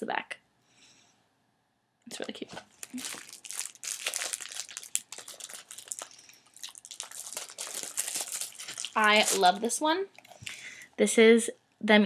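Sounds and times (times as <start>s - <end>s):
paper crinkling and rustling: 2.2s - 9.7s.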